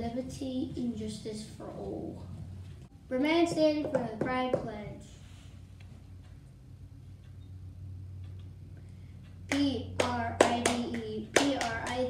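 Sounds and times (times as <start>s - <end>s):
child chanting: 9.5s - 12.0s
sharp hand claps: 9.5s - 12.0s.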